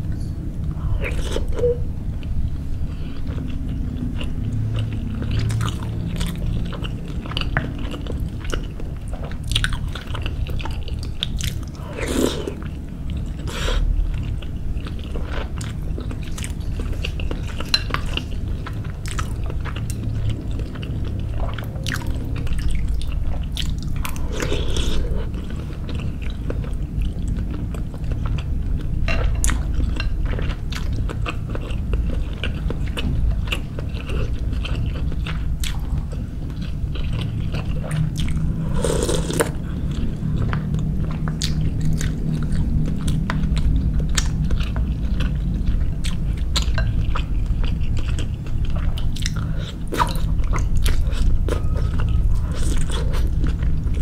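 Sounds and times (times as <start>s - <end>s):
person chewing: 2.9s - 54.0s.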